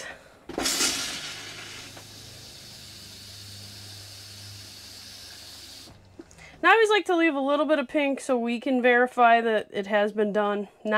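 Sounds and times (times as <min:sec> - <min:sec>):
toilet flushing water rush: 0:00.5 - 0:06.6
water pump humming: 0:00.5 - 0:06.6.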